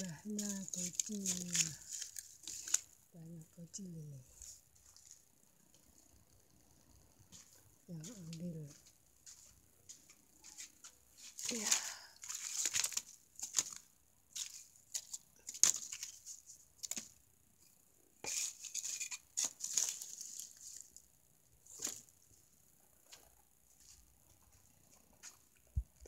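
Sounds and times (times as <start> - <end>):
firewood scraping and rustling: 18.2 - 21.0.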